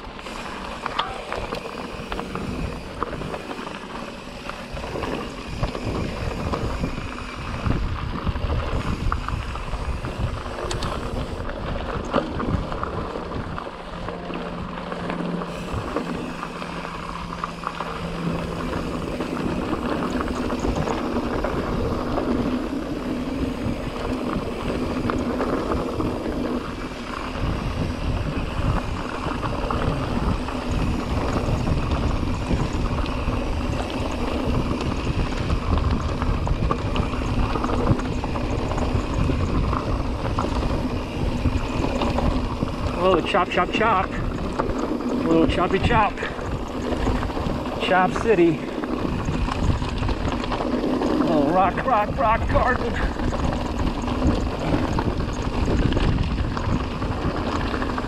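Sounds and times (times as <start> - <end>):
bike rattling clicks: 0.0 - 58.0
bike tyres crunching on dirt: 0.0 - 58.0
wind buffeting microphone: 1.2 - 58.0.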